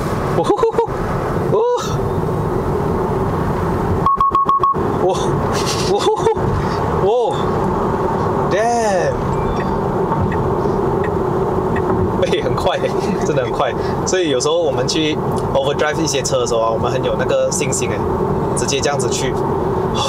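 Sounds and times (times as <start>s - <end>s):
road and tyre noise: 0.0s - 20.0s.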